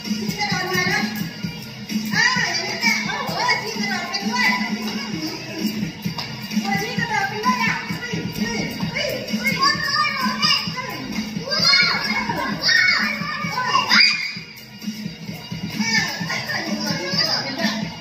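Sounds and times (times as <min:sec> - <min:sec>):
background music: 0:00.0 - 0:18.0
children's excited voices: 0:02.1 - 0:05.8, 0:06.6 - 0:14.6, 0:15.7 - 0:18.0
children squealing: 0:11.5 - 0:14.6.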